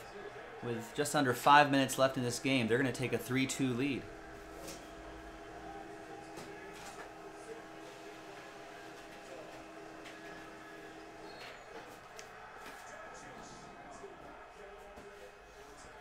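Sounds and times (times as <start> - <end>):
printer humming: 1.1 - 12.6.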